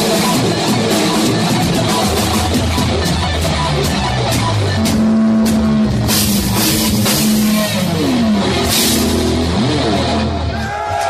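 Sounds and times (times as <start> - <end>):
electric guitar bending long notes: 0.0 - 10.9
drum kit: 0.0 - 11.0
cymbal crashes: 8.6 - 9.6.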